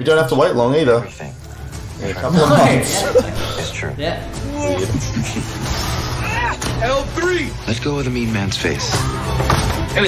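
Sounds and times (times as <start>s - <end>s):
person exclaiming: 2.3s - 3.8s.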